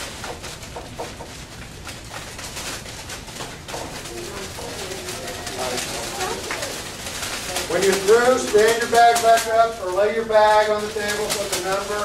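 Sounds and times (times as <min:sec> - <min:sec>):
paper bags crinkling and rustling: 0:00.0 - 0:12.0
small objects shifting in bags: 0:00.0 - 0:12.0
low voices murmuring: 0:03.3 - 0:12.0.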